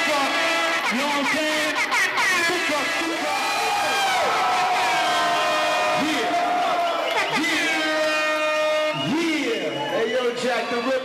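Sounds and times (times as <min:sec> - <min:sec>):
man calling over loudspeaker: 0:00.0 - 0:03.5, 0:05.7 - 0:06.6, 0:07.2 - 0:11.0.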